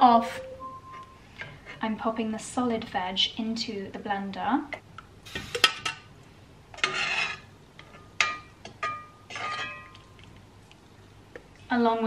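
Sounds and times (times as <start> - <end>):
metal spoon scraping pot: 6.8 - 7.5, 8.8 - 10.0.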